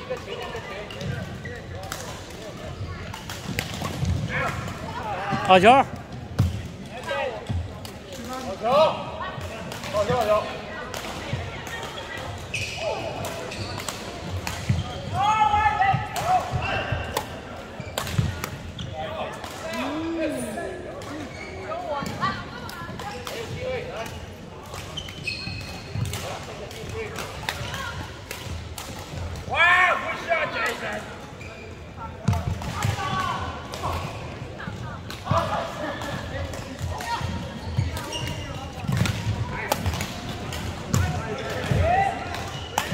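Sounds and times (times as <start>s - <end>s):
voices echoing: 0.0s - 42.9s
shoe squeaks: 12.5s - 13.8s, 21.1s - 22.4s, 24.9s - 26.0s, 31.4s - 32.0s, 37.6s - 38.7s.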